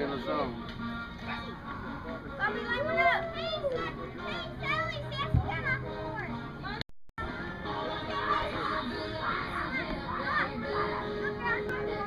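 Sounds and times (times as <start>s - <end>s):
children shouting and chattering: 1.0s - 12.0s.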